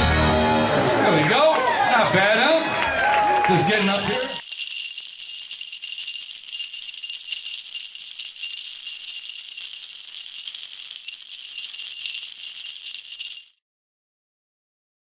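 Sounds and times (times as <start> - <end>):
small bells jingling: 3.7 - 13.6.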